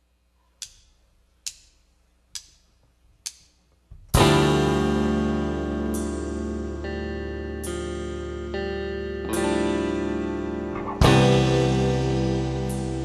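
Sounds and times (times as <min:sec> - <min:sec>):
drumstick clicks: 0:00.6 - 0:03.7
band chord of guitar and bass: 0:04.2 - 0:13.0.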